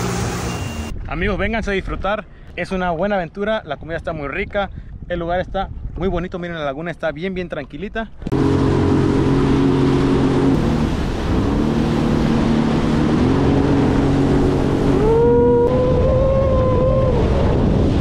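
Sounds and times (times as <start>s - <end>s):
jet ski engine: 0.0s - 0.9s, 8.2s - 18.0s
rushing wind and water: 0.0s - 18.0s.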